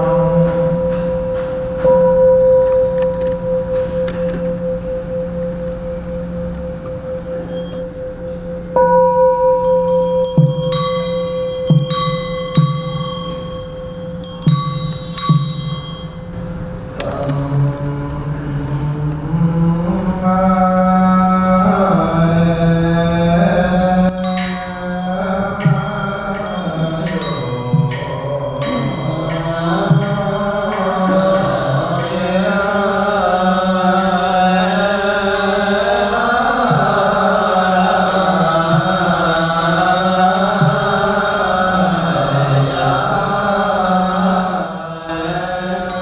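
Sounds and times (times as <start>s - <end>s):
bowl bell struck with mallet: 0.0s - 16.4s, 24.1s - 46.0s
monks chanting: 16.8s - 46.0s.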